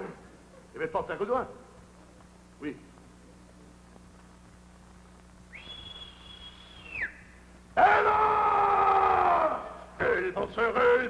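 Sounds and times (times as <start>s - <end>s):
man making whistle-like tone: 5.5s - 7.3s
man crying out: 7.8s - 9.8s.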